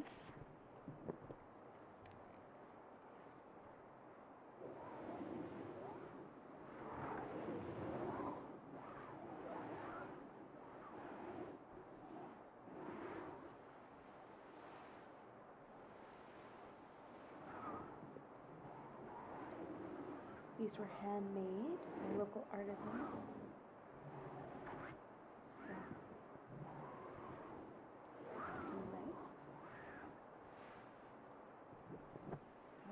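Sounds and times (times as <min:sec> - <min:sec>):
fabric rustling: 0:04.6 - 0:32.9.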